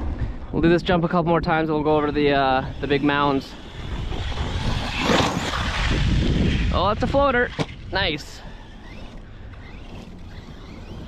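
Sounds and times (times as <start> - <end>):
low rumble: 0.0 - 8.0
toy truck motor and tyres rushing: 1.8 - 11.0.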